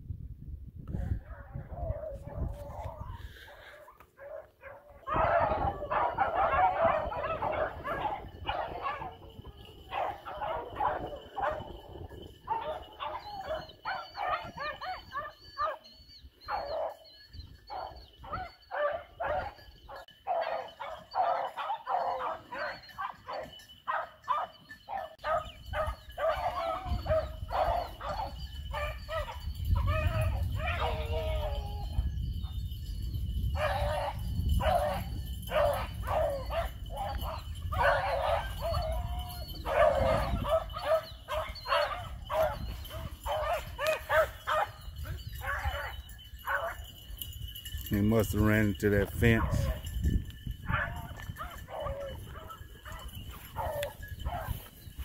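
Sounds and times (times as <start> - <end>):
hounds baying and barking: 0.9 - 55.0.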